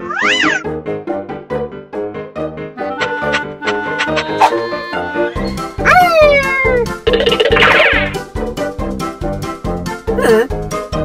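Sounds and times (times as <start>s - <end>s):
playful cartoon music: 0.0s - 11.0s
cartoon sliding pitch effect: 2.8s - 8.2s
fast rattling dash effect: 7.0s - 8.3s.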